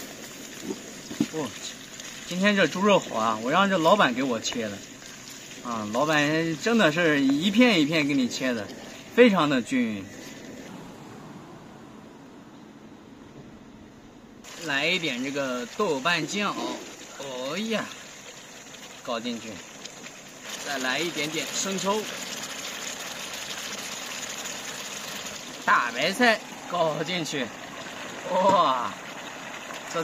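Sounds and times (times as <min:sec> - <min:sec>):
meat sizzling in hot oil: 0:00.0 - 0:09.1, 0:14.4 - 0:30.0.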